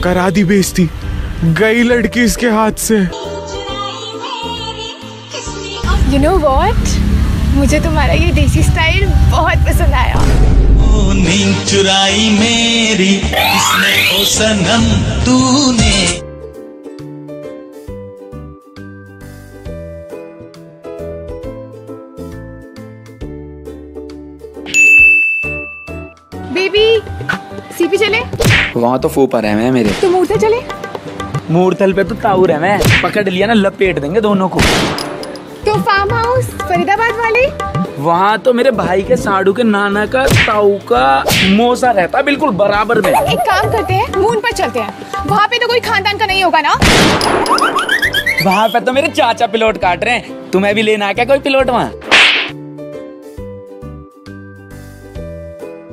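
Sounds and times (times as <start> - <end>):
light background music: 0.0 - 55.9
notification bell ding: 24.7 - 26.2
hard slap on face: 28.4 - 28.8, 32.8 - 33.1, 40.3 - 40.6, 41.3 - 41.6, 52.0 - 52.6.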